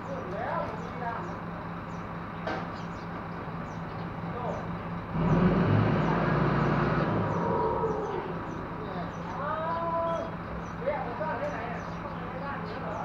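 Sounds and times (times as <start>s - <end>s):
diesel engine idling and revving: 0.0s - 13.0s.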